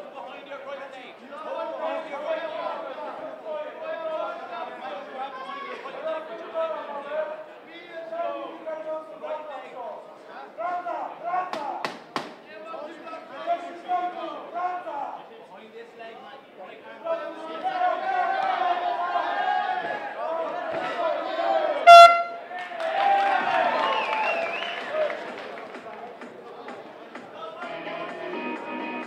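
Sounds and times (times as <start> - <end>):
sharp slaps: 11.5 - 12.4
loud horn blast: 21.8 - 22.4.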